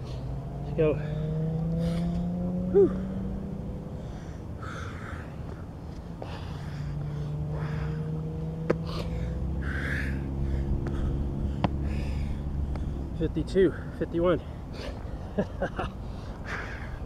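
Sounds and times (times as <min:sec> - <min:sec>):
low engine hum: 0:00.0 - 0:17.0
man breathing hard: 0:01.8 - 0:17.0.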